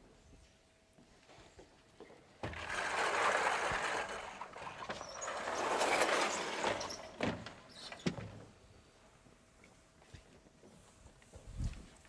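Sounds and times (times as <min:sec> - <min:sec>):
blackboard scraping rumble: 0:02.5 - 0:07.2.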